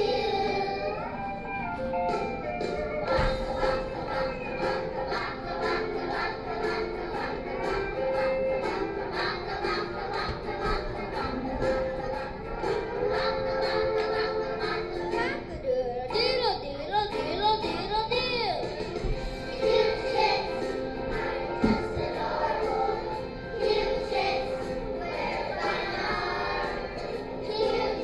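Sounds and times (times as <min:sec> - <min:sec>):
children singing together: 0:00.0 - 0:01.4, 0:03.0 - 0:17.8, 0:18.9 - 0:28.0
music with a beat: 0:01.6 - 0:15.3.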